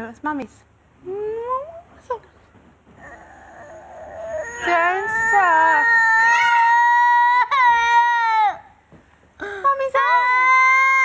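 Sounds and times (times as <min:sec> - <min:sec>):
toddler wailing cry: 0:03.0 - 0:08.7, 0:10.0 - 0:11.0.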